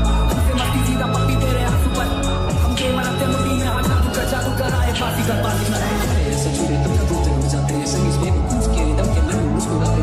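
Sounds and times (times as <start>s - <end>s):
remix music with deep bass: 0.0s - 10.0s.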